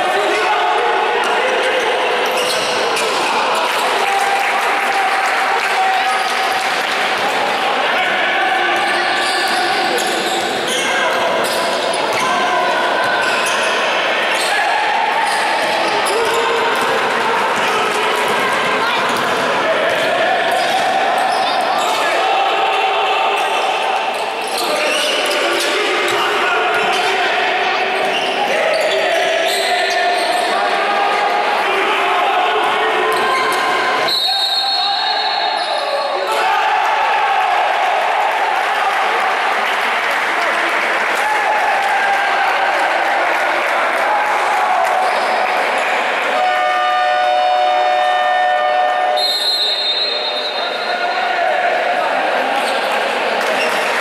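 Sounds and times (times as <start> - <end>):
players shouting: 0.0 - 54.0
referee's whistle: 28.0 - 30.5, 33.2 - 36.3, 46.4 - 51.1
electronic horn: 46.4 - 49.2.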